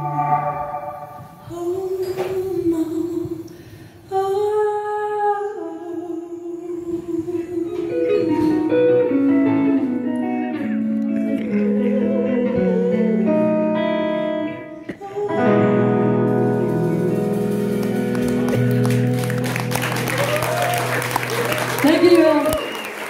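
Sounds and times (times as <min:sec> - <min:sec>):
electric guitar single notes: 0:00.0 - 0:01.6, 0:08.0 - 0:20.4
woman singing: 0:00.0 - 0:18.7.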